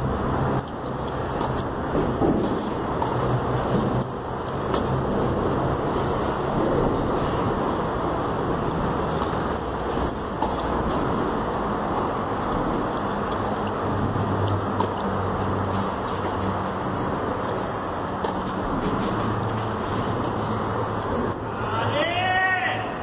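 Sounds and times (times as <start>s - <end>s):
outdoor background noise: 0.0s - 23.0s
racket hitting tennis ball: 1.0s - 1.7s, 14.7s - 15.1s, 18.2s - 20.5s.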